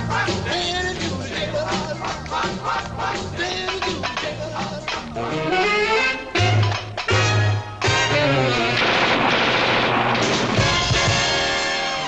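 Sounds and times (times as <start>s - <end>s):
rock band playing: 10.2s - 12.0s.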